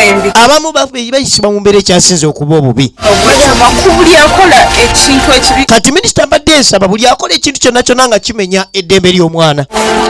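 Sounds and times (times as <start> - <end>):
background music: 0.0 - 0.6, 3.0 - 5.8, 9.7 - 10.0
man speaking: 0.0 - 9.7.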